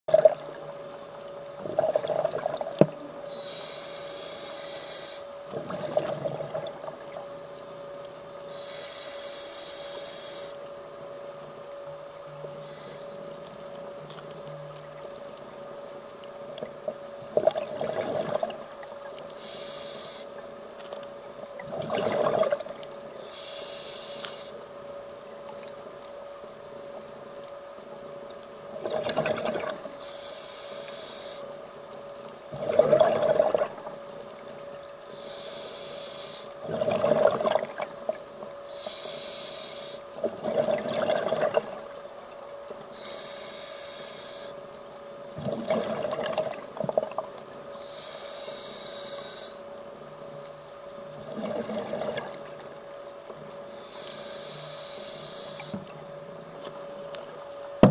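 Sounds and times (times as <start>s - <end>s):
steady faint hum: 0.1s - 57.9s
exhaled bubbles rushing: 1.6s - 2.8s, 17.3s - 18.7s, 21.6s - 22.7s, 28.8s - 29.8s, 32.5s - 33.9s, 36.6s - 38.0s, 40.3s - 41.9s, 45.4s - 47.2s, 51.2s - 52.5s
regulator hissing inhale: 3.3s - 5.3s, 8.5s - 10.6s, 12.5s - 13.4s, 19.4s - 20.4s, 23.2s - 24.6s, 30.0s - 31.6s, 35.0s - 36.6s, 38.7s - 40.1s, 42.9s - 44.6s, 47.7s - 49.6s, 53.7s - 55.8s.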